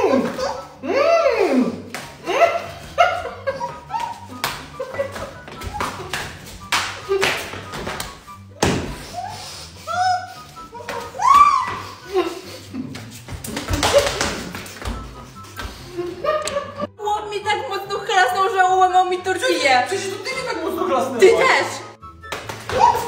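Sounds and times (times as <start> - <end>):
background music: 0.0 - 23.0
tortillas slapping faces: 1.9 - 2.3, 3.6 - 9.1, 12.8 - 15.8, 22.2 - 23.0
muffled cries and squeals: 8.9 - 12.1.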